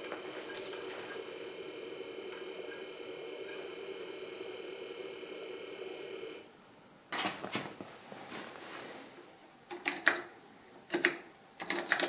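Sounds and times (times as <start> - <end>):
floppy drive humming: 0.0 - 12.0.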